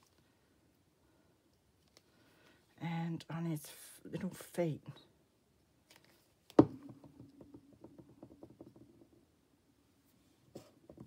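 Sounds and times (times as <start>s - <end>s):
bottle knocking on wooden table: 6.6s - 9.2s.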